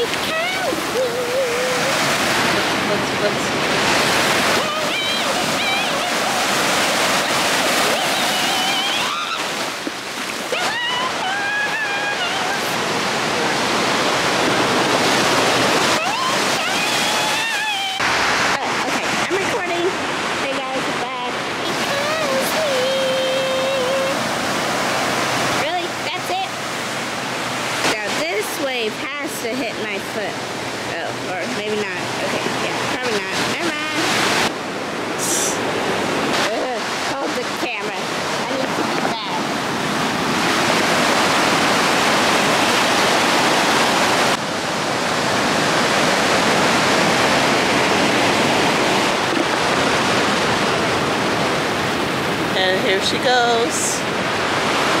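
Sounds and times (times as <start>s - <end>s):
background voices: 0.0s - 24.7s, 27.8s - 55.0s
ocean surf breaking: 0.0s - 55.0s.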